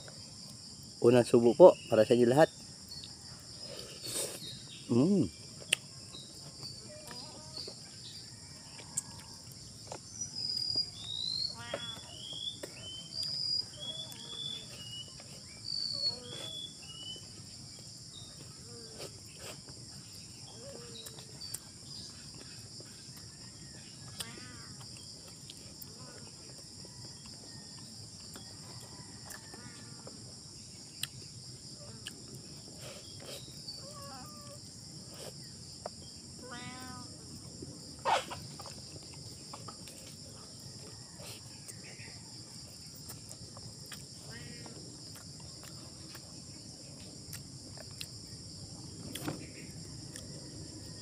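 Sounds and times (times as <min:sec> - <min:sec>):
insect chorus drone: 0:00.0 - 0:51.0
short chirping calls: 0:10.2 - 0:17.4.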